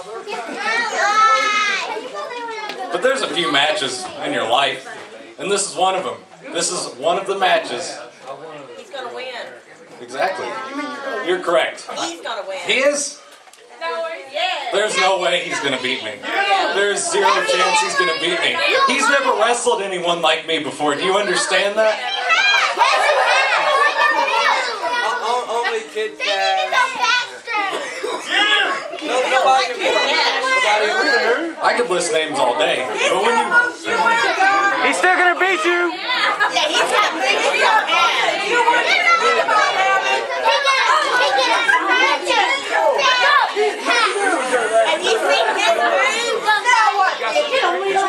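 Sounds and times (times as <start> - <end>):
crowd chatter: 0.0 - 48.0
overlapping voices: 34.0 - 48.0.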